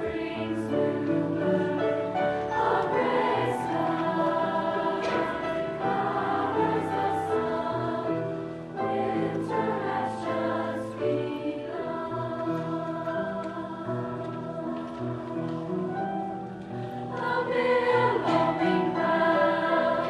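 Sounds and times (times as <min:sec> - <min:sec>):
women's choir singing in harmony: 0:00.0 - 0:20.0.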